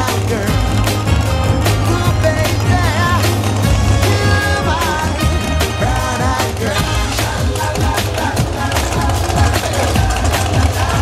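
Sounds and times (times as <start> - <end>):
song with heavy bass: 0.0 - 11.0.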